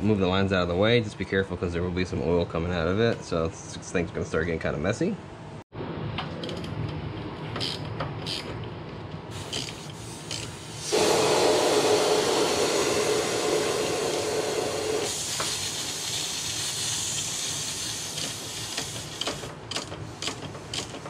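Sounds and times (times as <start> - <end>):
ratchet clicks: 7.6 - 8.6, 9.5 - 10.6, 18.1 - 21.0
refrigerant hissing from fitting: 9.3 - 19.4.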